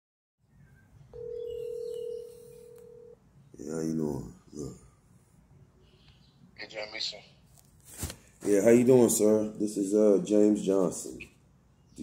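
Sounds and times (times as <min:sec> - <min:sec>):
telephone ringback tone: 0:01.1 - 0:03.2.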